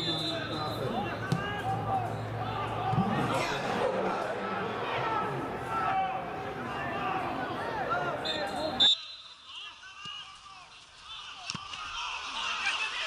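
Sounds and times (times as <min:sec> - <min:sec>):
shrill whistle blast: 0:00.0 - 0:00.8, 0:08.2 - 0:09.5
spectators voices and shouts: 0:00.0 - 0:13.0.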